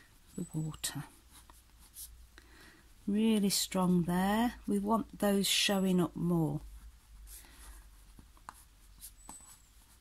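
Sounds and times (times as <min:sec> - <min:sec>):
crayon scratching on paper: 0:00.3 - 0:02.2.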